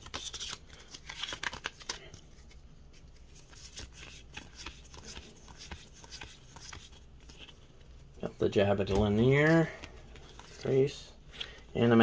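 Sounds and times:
cards clicking and rustling: 0.0s - 7.8s, 8.8s - 11.6s.

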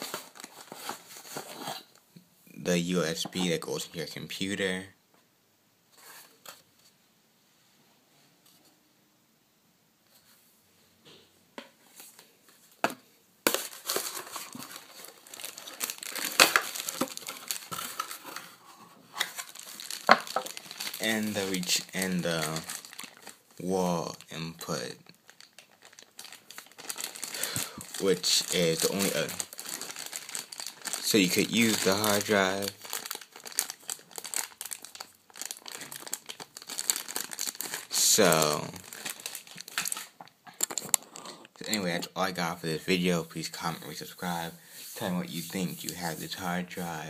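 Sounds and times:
plastic bags crinkling: 0.0s - 1.9s, 13.5s - 42.0s.

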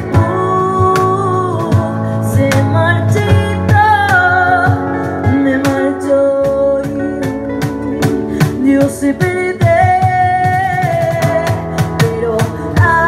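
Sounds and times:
acoustic guitar: 0.0s - 13.0s
cajon tapping a beat: 0.0s - 13.0s
keyboard: 0.0s - 13.0s
woman singing a ballad: 0.0s - 13.0s.

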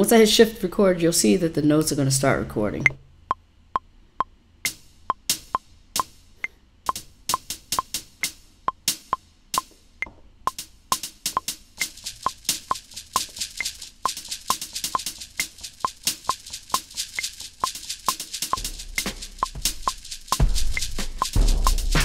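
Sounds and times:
metronome clicking: 2.8s - 22.0s
short high percussion hits: 10.5s - 22.0s
deep sustained bass drum: 18.5s - 22.0s.

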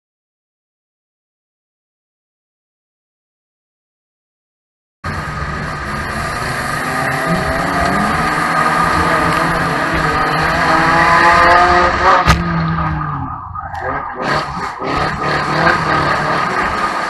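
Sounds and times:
car engine revving: 5.1s - 17.0s.

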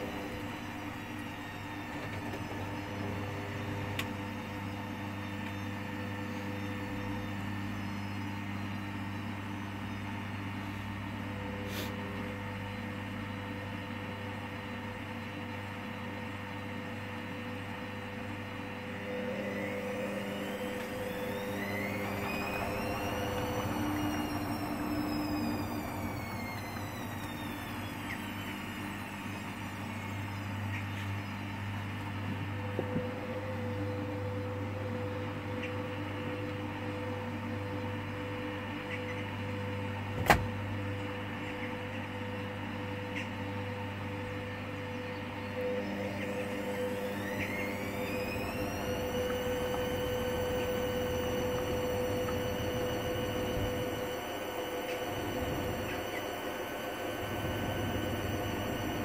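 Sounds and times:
drain pump hum: 0.0s - 59.0s
washing machine motor whining: 0.0s - 59.0s.

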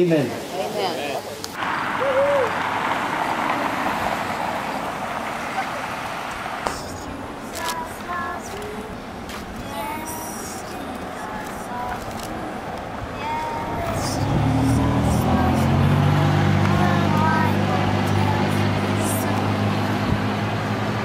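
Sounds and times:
background traffic noise: 0.0s - 21.0s
vehicle engine humming: 1.3s - 21.0s.

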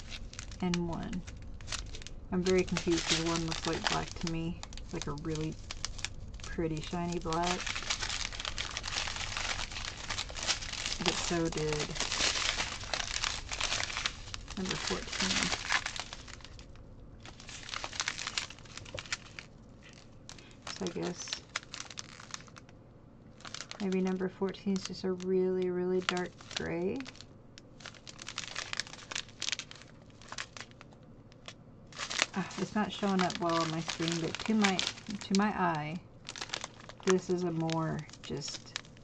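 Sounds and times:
plastic packets crinkling: 0.0s - 22.7s, 23.3s - 39.0s.

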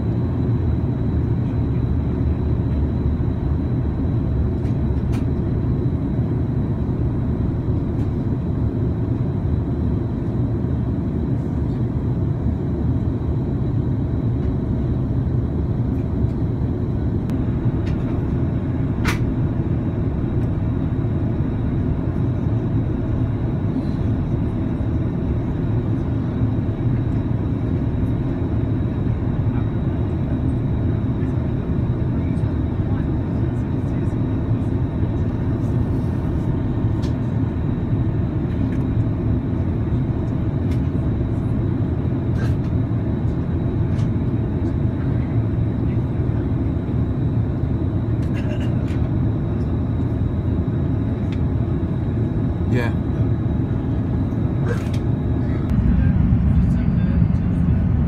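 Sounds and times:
jet engine cabin drone: 0.0s - 58.0s.

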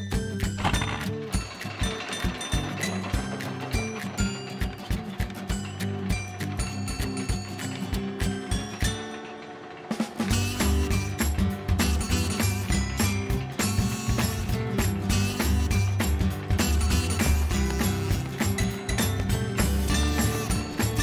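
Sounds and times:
upbeat cartoon music: 0.0s - 21.0s
roller coaster lift clicking rattle: 0.1s - 21.0s.

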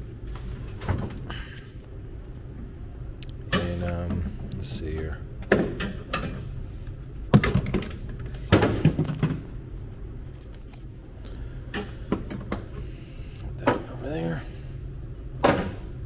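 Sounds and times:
steady low hum: 0.0s - 16.0s
plastic containers knocking and clunking: 7.3s - 9.5s.

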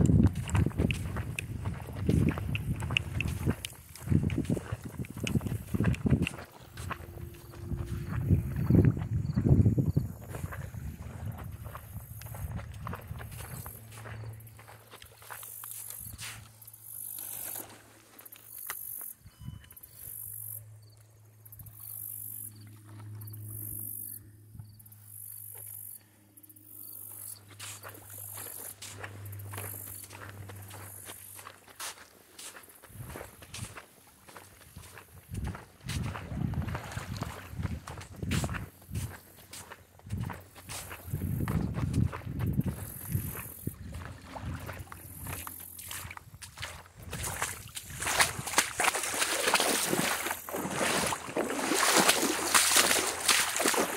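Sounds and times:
footsteps on sand: 0.0s - 19.2s, 27.0s - 53.9s.

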